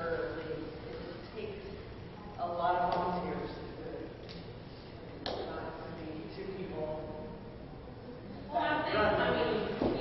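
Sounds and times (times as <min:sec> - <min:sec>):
person speaking in a large hall: 0:00.0 - 0:10.0.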